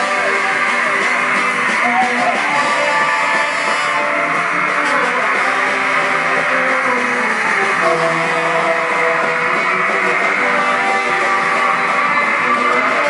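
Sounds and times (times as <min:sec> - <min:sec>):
punk rock band playing: 0:00.0 - 0:13.0.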